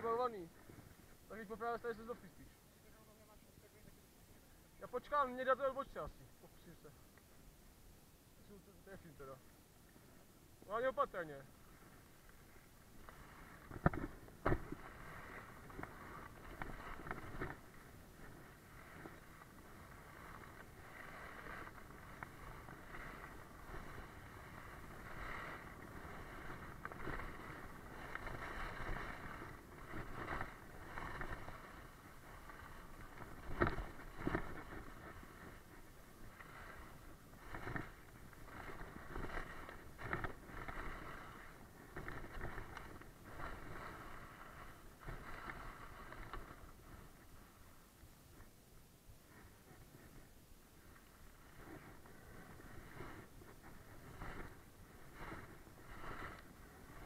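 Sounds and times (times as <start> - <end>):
skis scraping over icy snow: 10.0 - 48.5, 49.2 - 57.0.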